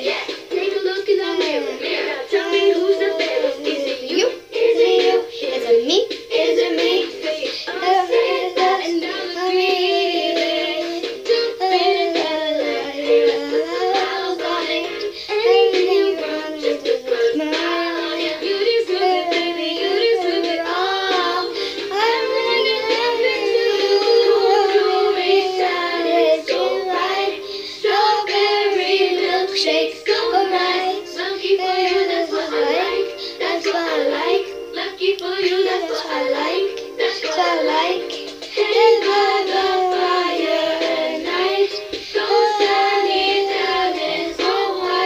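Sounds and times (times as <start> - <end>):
girl singing: 0.0 - 45.0.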